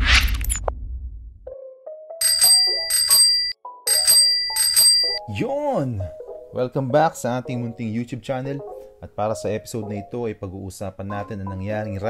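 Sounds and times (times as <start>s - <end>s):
bicycle bell ringing: 2.2s - 5.2s.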